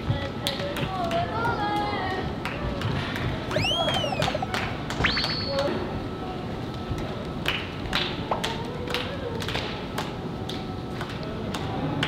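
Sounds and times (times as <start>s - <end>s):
rising whistle-like tone: 3.5s - 5.8s.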